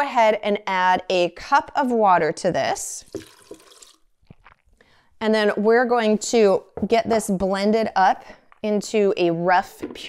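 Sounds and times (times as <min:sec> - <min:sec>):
water pouring into blender jar: 0:03.0 - 0:04.6.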